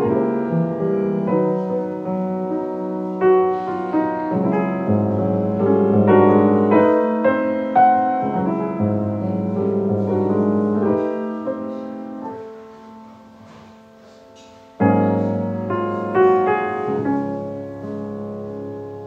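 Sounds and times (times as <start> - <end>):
solo piano: 0.0 - 19.0.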